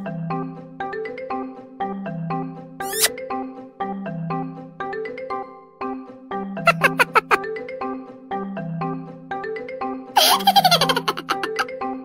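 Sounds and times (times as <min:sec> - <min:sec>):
baby giggling: 0:06.7 - 0:07.4, 0:10.2 - 0:11.7.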